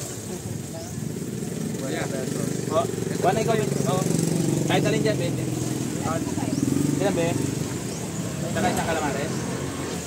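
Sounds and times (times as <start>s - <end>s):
people talking: 0.0s - 7.5s, 8.3s - 9.6s.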